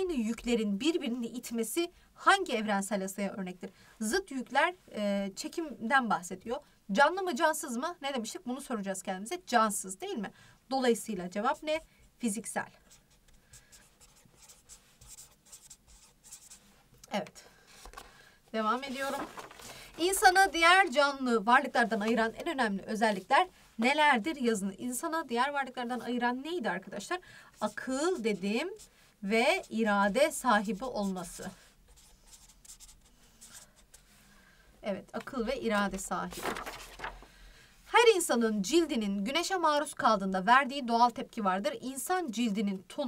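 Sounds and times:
marker writing on paper: 0:12.9 - 0:16.7, 0:29.5 - 0:34.0.

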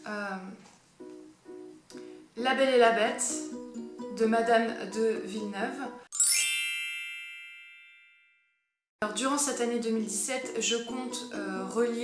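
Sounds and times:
bright bell-like chime: 0:06.1 - 0:08.7.

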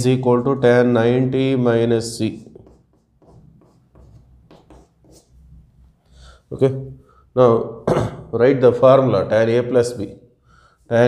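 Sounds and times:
chalk writing on blackboard: 0:02.1 - 0:05.6
man talking: 0:06.5 - 0:10.2.

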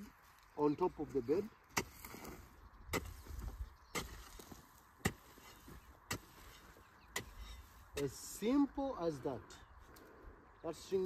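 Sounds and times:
hand hoe chopping into soil: 0:01.7 - 0:08.3.

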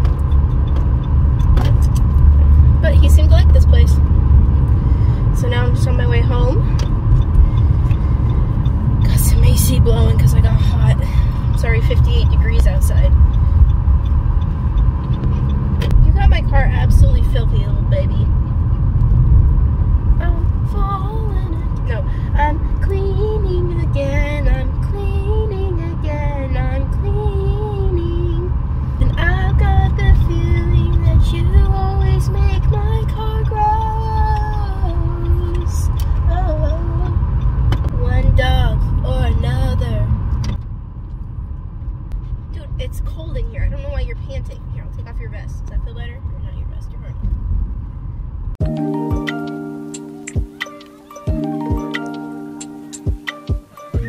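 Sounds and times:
car cabin rumble: 0:00.0 - 0:54.0
woman singing: 0:20.2 - 0:37.2.

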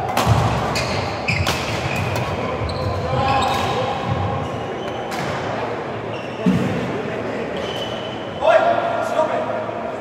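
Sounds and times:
people's voices in sports hall: 0:00.0 - 0:10.0
shoes squeaking on court floor: 0:00.7 - 0:05.4, 0:06.1 - 0:06.7, 0:07.5 - 0:08.2.

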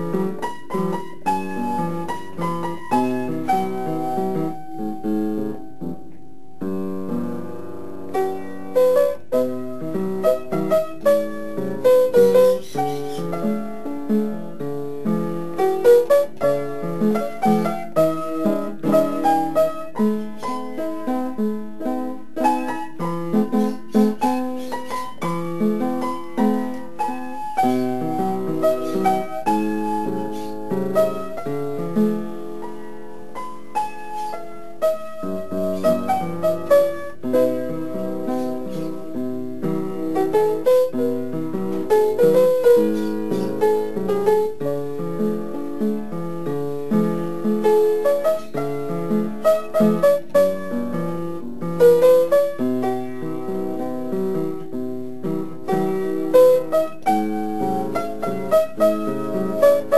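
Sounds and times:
piano music: 0:00.0 - 0:59.9.

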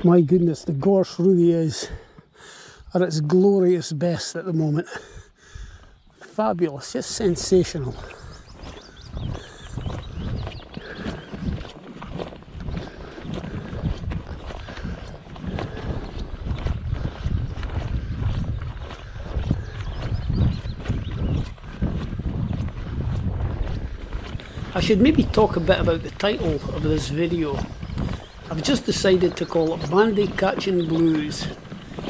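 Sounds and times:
wind buffeting microphone: 0:05.0 - 0:32.0
footsteps on dirt path: 0:05.8 - 0:32.0.

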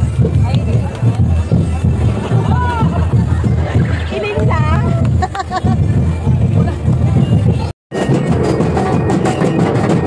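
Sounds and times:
drums beating fast rhythm: 0:00.0 - 0:10.0.

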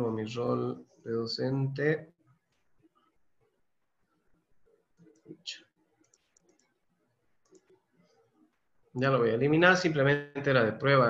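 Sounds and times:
faint mouse clicks: 0:06.0 - 0:06.8, 0:07.4 - 0:08.6.

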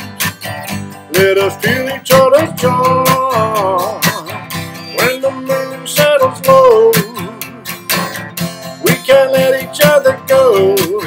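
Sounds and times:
acoustic guitar strumming: 0:00.0 - 0:11.0
person singing: 0:01.1 - 0:07.7, 0:08.7 - 0:11.0.

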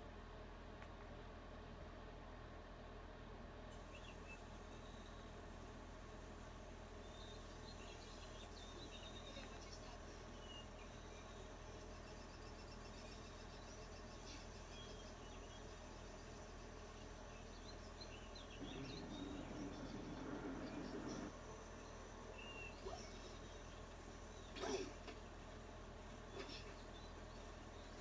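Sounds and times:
steady low hum: 0:00.0 - 0:28.0
bird chirps: 0:03.8 - 0:05.3, 0:07.0 - 0:25.0
loud low noise: 0:16.9 - 0:28.0.

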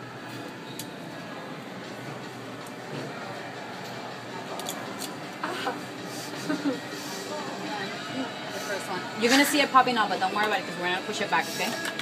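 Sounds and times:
shop background noise: 0:00.0 - 0:12.0.

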